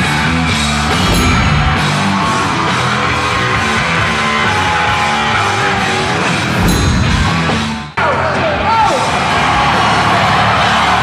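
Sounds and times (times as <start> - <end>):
rock music with electric guitar: 0.0 - 10.0.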